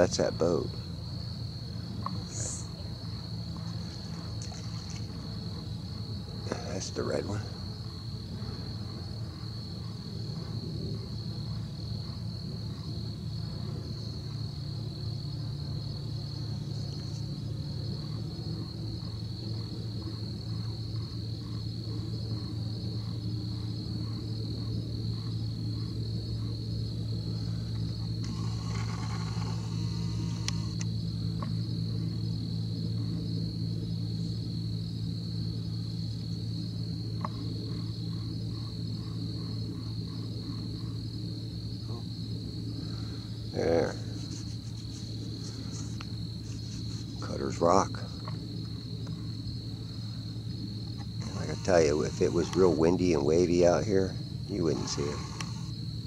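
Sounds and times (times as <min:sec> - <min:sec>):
insects trilling: 0:00.0 - 0:56.0
low hum: 0:00.0 - 0:56.0.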